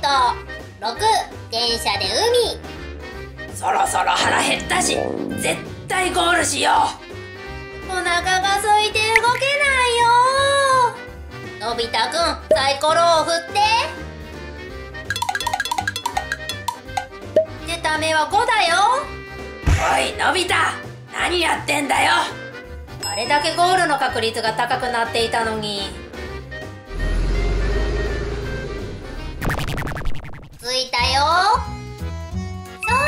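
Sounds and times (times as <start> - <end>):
background music: 0.0 - 29.5, 30.6 - 33.0
percussive ticking music cue: 15.1 - 17.6.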